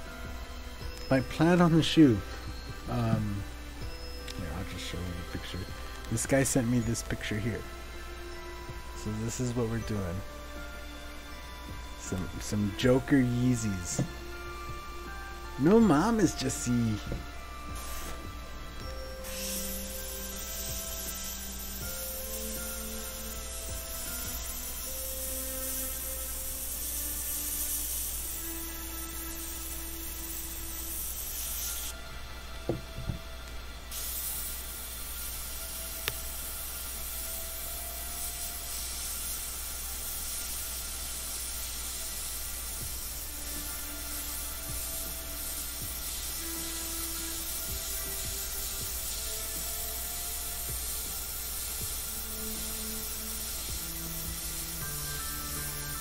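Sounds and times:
soft background music: 0.0s - 56.0s
airbrush hissing: 0.7s - 32.0s, 33.8s - 56.0s.

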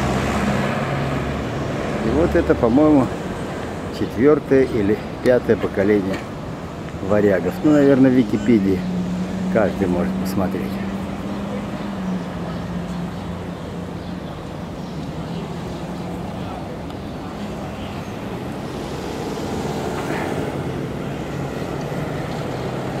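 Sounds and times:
road traffic: 0.0s - 23.0s.

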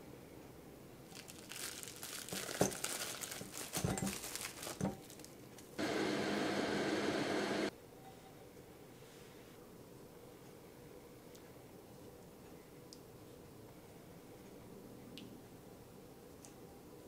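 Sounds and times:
butter cubes rustling in glass bowl: 1.1s - 5.4s
microwave hum: 5.8s - 7.7s.

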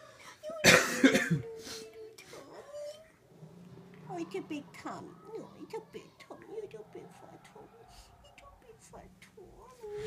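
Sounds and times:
person coughing: 0.6s - 1.5s.

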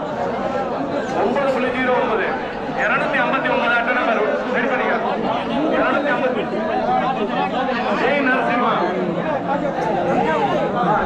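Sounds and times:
crowd of men talking and calling out: 0.0s - 11.0s.

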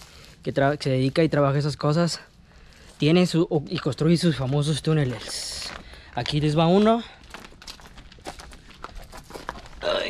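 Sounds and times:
footsteps on dry leaves: 0.0s - 1.4s, 4.3s - 10.0s.

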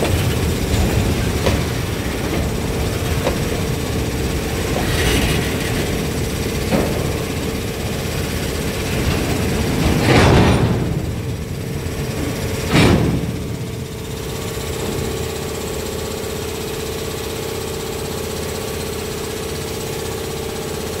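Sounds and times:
loud burst of noise: 0.0s - 16.7s
locomotive engine running: 0.0s - 21.0s.

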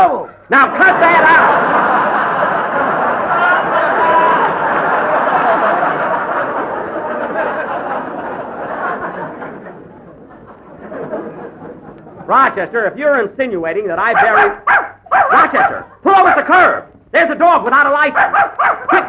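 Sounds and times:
studio audience laughing: 0.7s - 12.6s.

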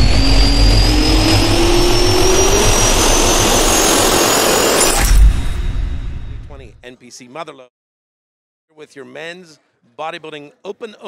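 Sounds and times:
loud steady rush: 0.0s - 5.1s
jet turbine whine rising: 0.0s - 6.6s.

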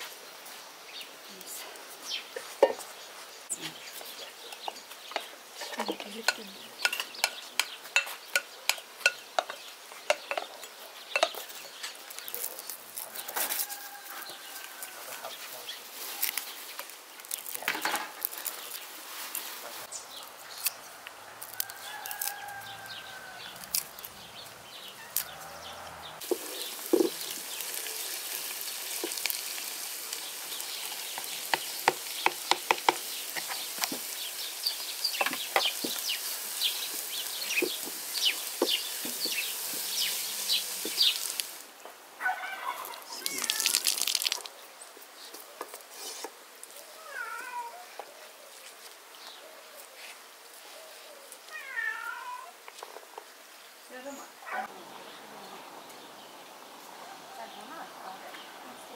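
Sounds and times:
greens sizzling in a pan: 4.5s - 20.0s, 26.2s - 41.7s, 42.8s - 44.5s.

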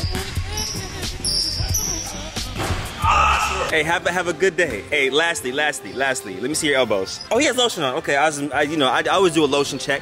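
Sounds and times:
sneaker squeaks: 0.0s - 2.5s
background music: 0.0s - 10.0s.

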